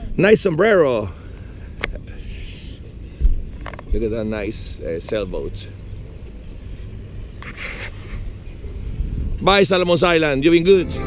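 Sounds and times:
boat diesel engine humming: 1.0 - 11.0.

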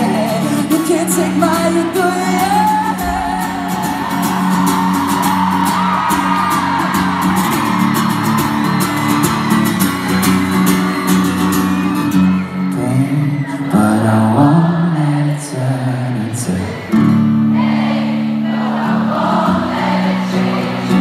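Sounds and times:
person singing: 0.0 - 5.8, 12.7 - 16.9
live pop band playing: 0.0 - 18.0
guitar: 0.0 - 21.0.

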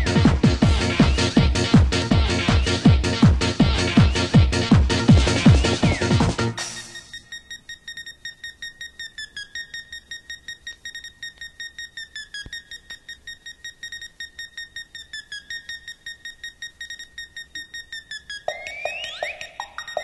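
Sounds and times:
fast electronic beeping: 0.0 - 3.0, 3.6 - 20.0.

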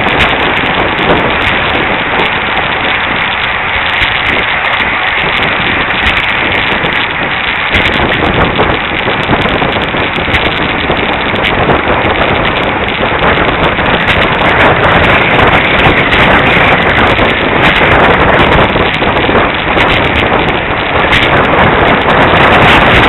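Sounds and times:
bicycle tyres on road: 0.0 - 23.0
wind rushing on microphone: 0.0 - 23.0.

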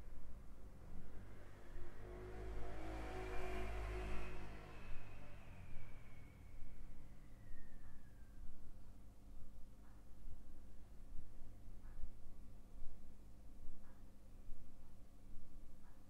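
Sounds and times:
steady low hum: 0.0 - 16.0
vehicle passing by: 0.2 - 7.4.

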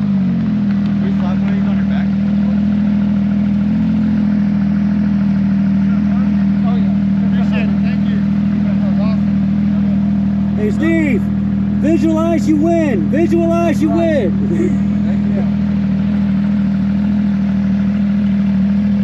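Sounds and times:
car engine running steadily: 0.0 - 19.0.

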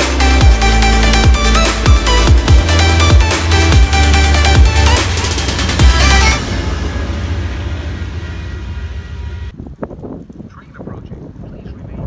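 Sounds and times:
passenger train rumble: 2.4 - 12.0.

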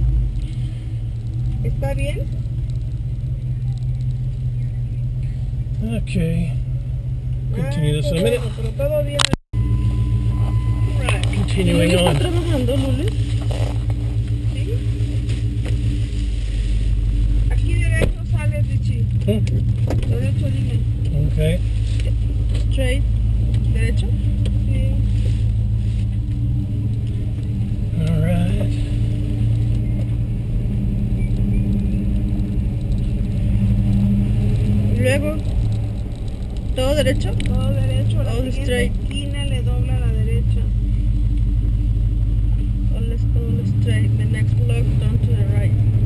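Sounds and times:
car engine and road noise: 0.0 - 46.0.

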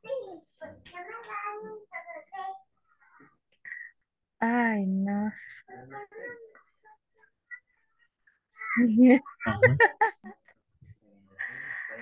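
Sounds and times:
person vocalizing over video call: 8.8 - 9.8.

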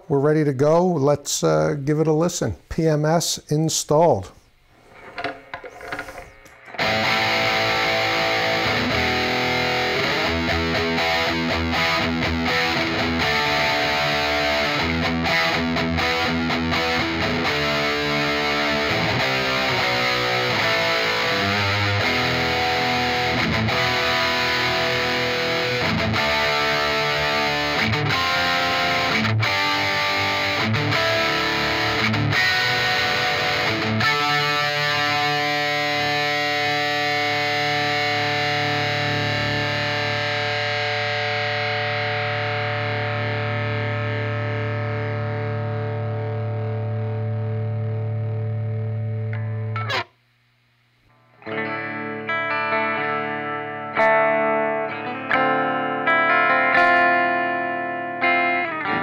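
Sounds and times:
distorted electric guitar riffs: 4.8 - 50.3, 51.1 - 59.0.

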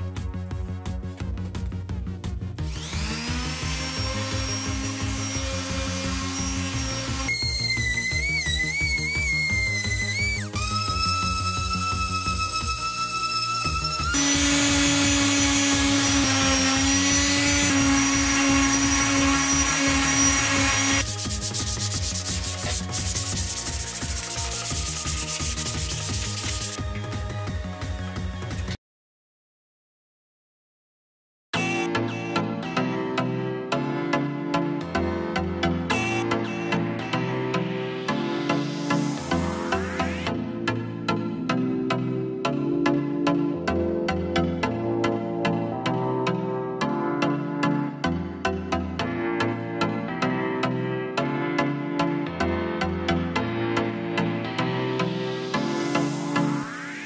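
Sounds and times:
background music with steady beat: 0.0 - 28.8
orbital sander on metal: 2.6 - 26.8.

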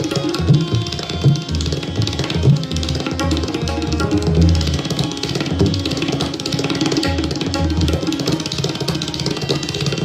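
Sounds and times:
harmonium repeating melody: 0.0 - 10.0
tabla and pakhwaj drumming: 0.0 - 10.0.

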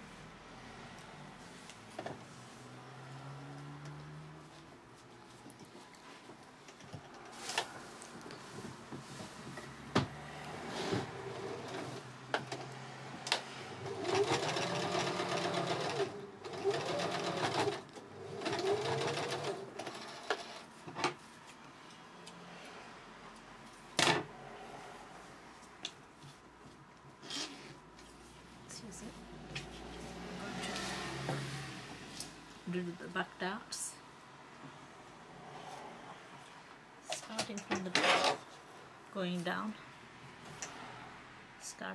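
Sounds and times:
sewing machine stitching: 13.8 - 20.7.

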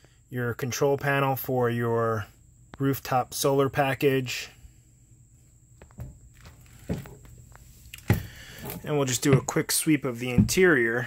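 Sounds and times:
footsteps on vinyl flooring: 5.8 - 10.8.

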